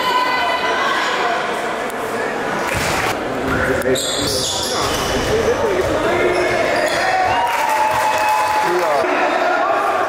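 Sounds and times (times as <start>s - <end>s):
indistinct voices in a hall: 0.0s - 10.0s
sneakers squeaking: 3.5s - 8.0s.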